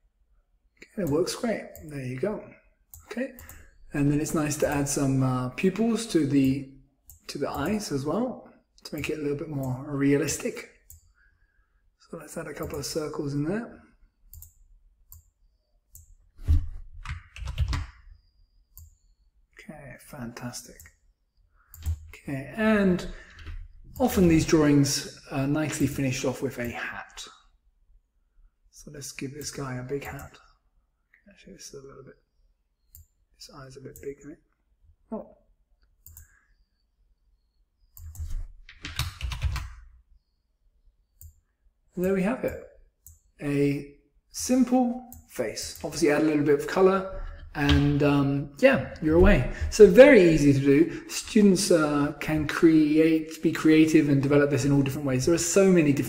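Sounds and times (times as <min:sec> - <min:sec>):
computer mouse clicking: 0:02.9 - 0:03.7, 0:10.8 - 0:11.1, 0:14.3 - 0:16.2, 0:18.7 - 0:19.2, 0:21.7 - 0:22.1, 0:29.4 - 0:30.3, 0:32.8 - 0:33.2, 0:35.8 - 0:36.4, 0:37.8 - 0:39.8, 0:41.1 - 0:41.4.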